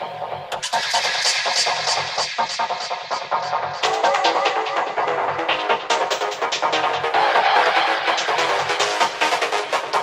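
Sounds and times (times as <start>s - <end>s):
psytrance music: 0.0s - 10.0s
hi-hat hits: 0.5s - 7.1s.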